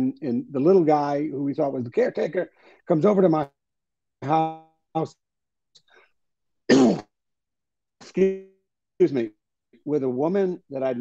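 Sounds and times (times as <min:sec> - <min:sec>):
man clearing throat: 0:06.7 - 0:07.1.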